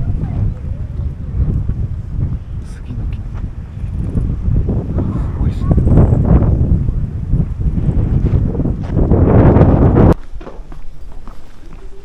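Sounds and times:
wind buffeting microphone: 0.0 - 10.4.

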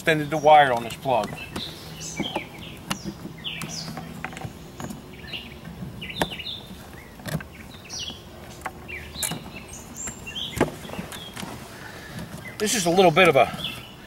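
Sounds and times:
small birds chirping: 0.0 - 14.0.

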